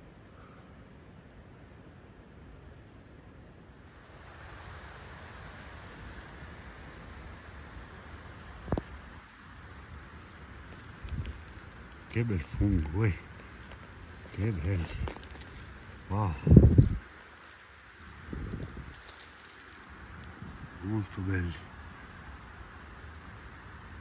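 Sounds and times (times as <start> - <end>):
low steady rustling: 0.0 - 24.0.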